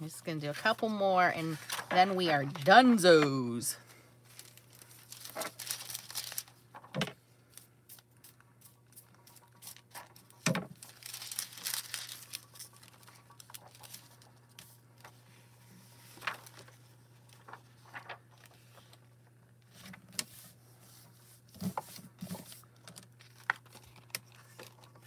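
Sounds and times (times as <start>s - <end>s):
foil sheet crinkling and rustling: 0.6s - 3.0s, 4.2s - 6.9s, 7.5s - 19.0s.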